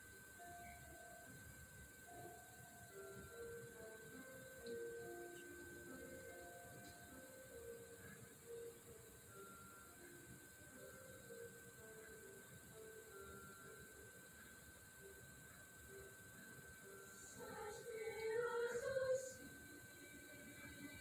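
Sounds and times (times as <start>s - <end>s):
steady high tone: 0.0s - 21.0s
female choir singing on television: 16.4s - 21.0s.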